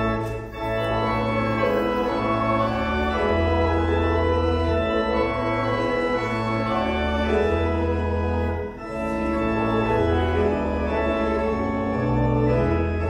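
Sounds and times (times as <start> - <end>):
organ playing a hymn: 0.0 - 13.0.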